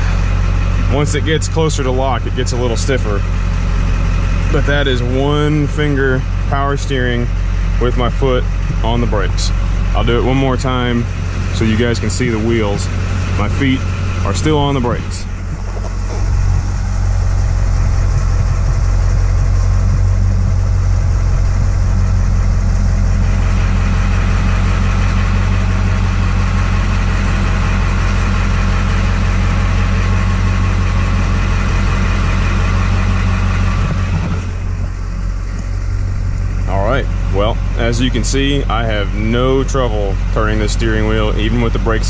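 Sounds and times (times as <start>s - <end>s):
diesel engine idling: 0.0s - 42.0s
power steering pump whining: 0.0s - 42.0s.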